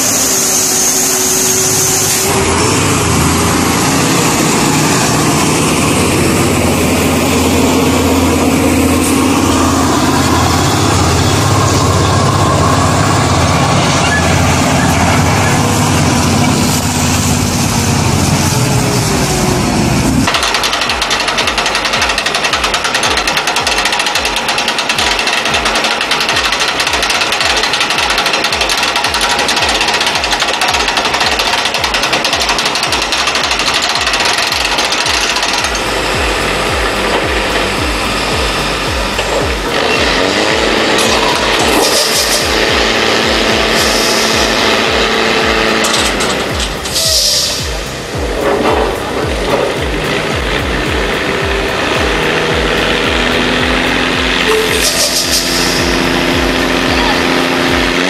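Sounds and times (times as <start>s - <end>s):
heavy truck engine running: 0.0s - 58.0s
steady engine hum: 0.0s - 58.0s
fast mechanical clatter: 20.2s - 37.7s, 38.4s - 47.0s.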